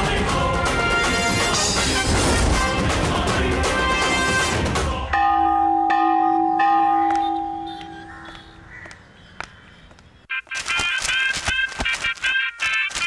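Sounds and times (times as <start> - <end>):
loud burst of music: 0.0 - 5.1
temple bell ringing: 5.1 - 8.0.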